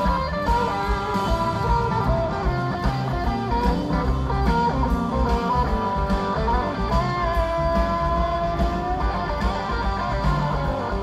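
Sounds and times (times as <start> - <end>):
live rock band playing: 0.0 - 11.0
long held guitar lead note: 0.0 - 11.0.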